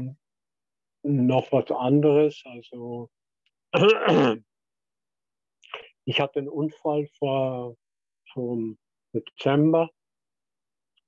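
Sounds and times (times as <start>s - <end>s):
man clearing throat: 3.8s - 4.4s.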